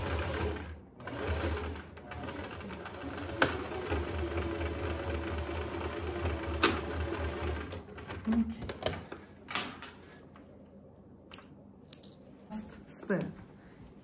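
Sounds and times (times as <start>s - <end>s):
sewing machine stitching: 0.0s - 8.4s.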